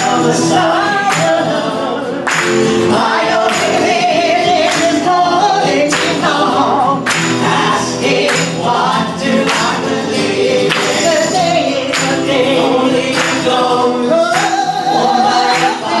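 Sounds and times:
acoustic guitar: 0:00.0 - 0:16.0
person singing: 0:00.0 - 0:16.0.

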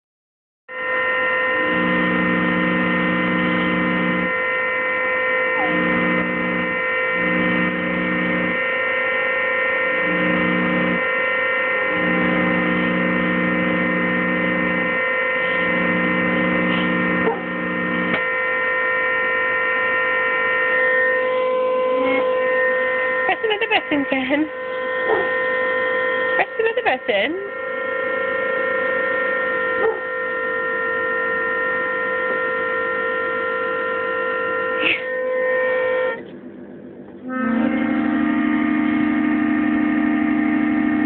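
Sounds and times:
lower organ chord: 0:01.5 - 0:04.5, 0:09.7 - 0:18.2, 0:37.2 - 0:41.0
keyboard organ held chord: 0:11.7 - 0:18.2, 0:37.2 - 0:41.0.

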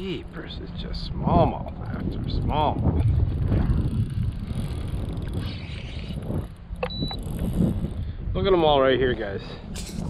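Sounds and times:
wind rumbling on microphone: 0:00.0 - 0:10.0
short high beep: 0:06.8 - 0:07.2.

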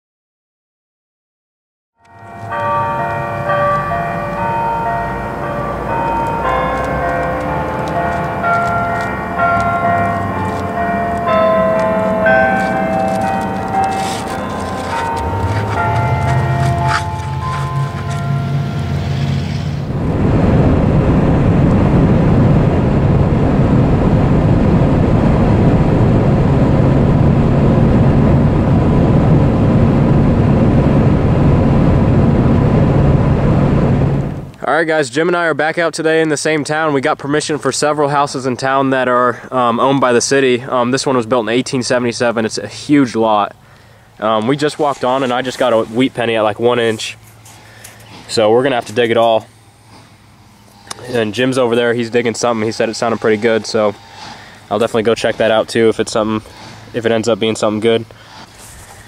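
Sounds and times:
bells ringing: 0:02.0 - 0:20.0, 0:37.7 - 0:58.1
road noise inside moving car: 0:02.3 - 0:34.5.

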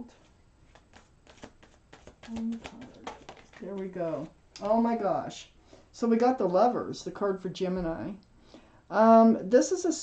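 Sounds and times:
cards shuffling: 0:00.2 - 0:04.8.

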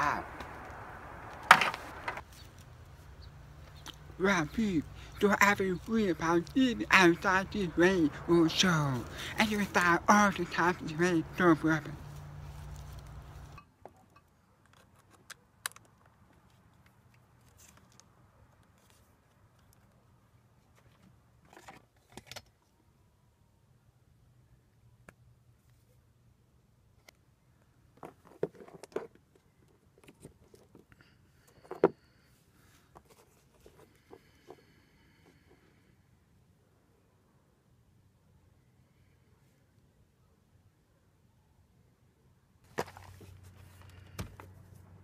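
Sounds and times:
low outdoor rumble: 0:00.0 - 0:13.6
cord rustling: 0:11.9 - 0:13.6, 0:42.7 - 0:44.9.

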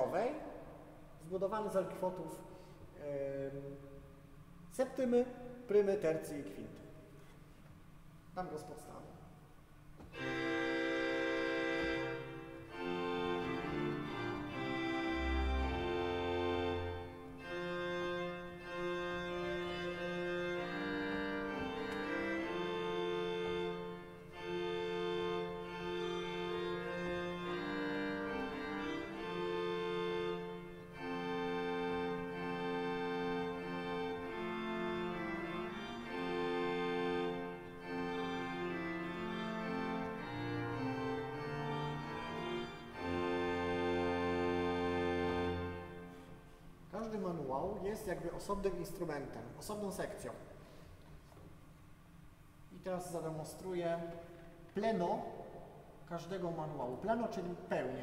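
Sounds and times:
pipe organ chords: 0:00.0 - 0:58.0
low organ pedal note: 0:10.0 - 0:47.1.

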